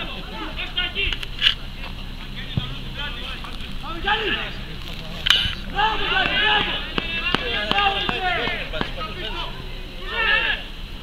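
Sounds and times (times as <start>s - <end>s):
people shouting and calling: 0.0s - 11.0s.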